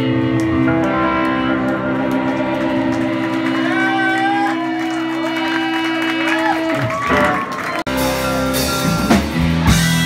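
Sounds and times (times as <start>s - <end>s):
electric guitars ringing notes: 0.0s - 10.0s.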